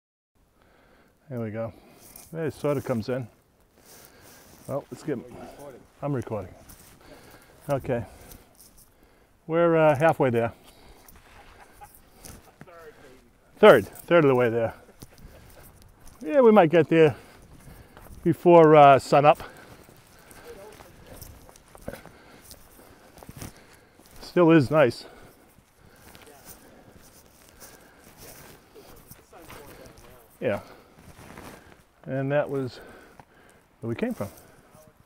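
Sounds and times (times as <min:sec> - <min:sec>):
footsteps on rocky trail: 0:01.8 - 0:09.2, 0:10.0 - 0:35.0.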